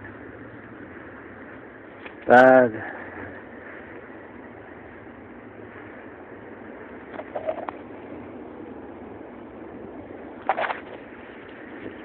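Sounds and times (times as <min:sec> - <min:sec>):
city background noise: 0:00.0 - 0:12.0.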